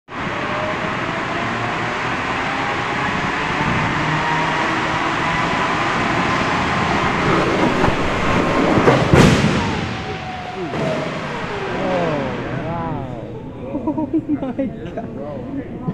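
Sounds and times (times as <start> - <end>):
towed car rumbling with whine: 0.1 - 15.2
car crashing into barrier: 7.0 - 13.4.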